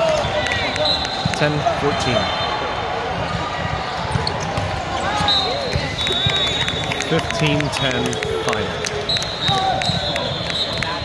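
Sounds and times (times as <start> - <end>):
voices of players and spectators: 0.0 - 11.0.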